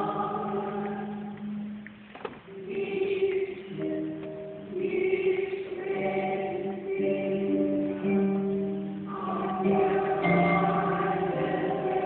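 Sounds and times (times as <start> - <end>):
choir singing held chords: 0.0 - 1.8, 2.5 - 12.0.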